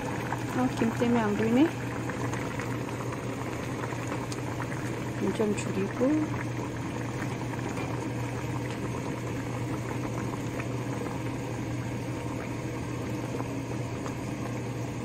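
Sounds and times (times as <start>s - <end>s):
pot bubbling at a boil: 0.0s - 15.0s.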